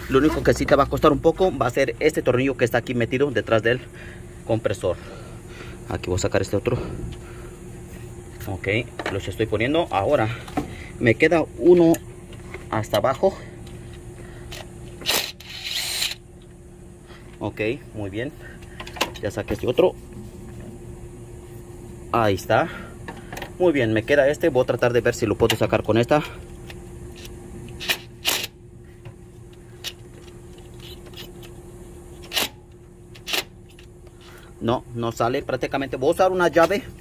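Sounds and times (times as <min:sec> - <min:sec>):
faint steady hum: 0:00.0 - 0:37.0
power tool whirring: 0:14.5 - 0:16.2.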